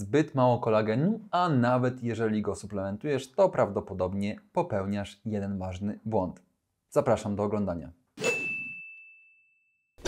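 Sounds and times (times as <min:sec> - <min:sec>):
bright electronic ding: 0:08.2 - 0:10.0.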